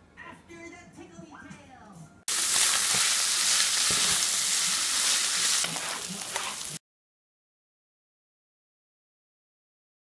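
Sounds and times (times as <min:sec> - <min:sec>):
meat sizzling in a frying pan: 0:02.3 - 0:06.8
spatula scraping a pan: 0:02.3 - 0:06.8.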